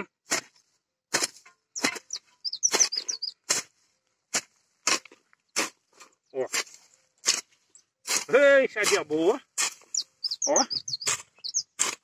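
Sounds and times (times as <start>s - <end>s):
hoe scraping and chopping soil: 0.0s - 12.0s
bird chirps: 1.7s - 3.4s, 9.8s - 11.8s.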